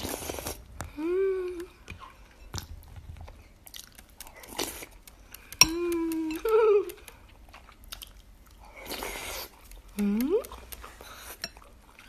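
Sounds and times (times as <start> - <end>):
slurping from a spoon: 0.0 - 0.7
closed-mouth hum: 0.0 - 7.4
chewing and mouth clicks: 1.6 - 12.0.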